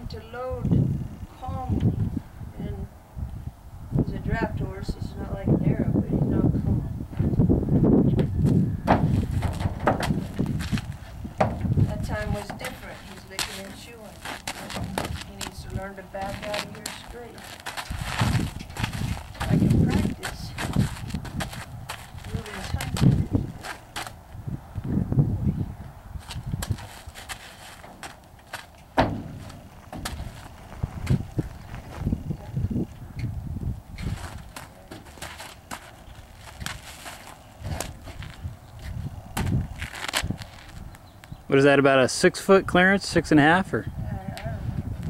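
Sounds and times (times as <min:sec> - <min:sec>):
horse hooves thudding on trailer floor: 0:08.2 - 0:24.1, 0:26.3 - 0:31.3, 0:34.0 - 0:38.2.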